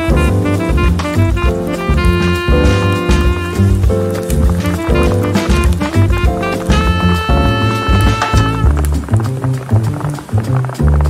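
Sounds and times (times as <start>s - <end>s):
bass line with quick beat: 0.0s - 11.0s.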